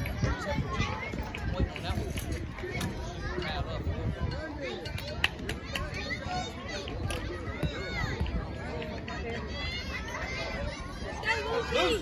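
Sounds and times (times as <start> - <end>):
girls calling and chattering: 0.0 - 12.0.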